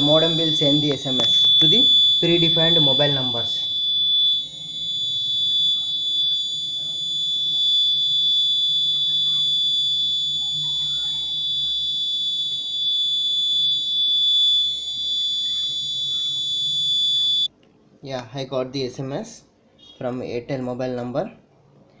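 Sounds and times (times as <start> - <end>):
piezo buzzer high-pitched tone: 0.0 - 17.5.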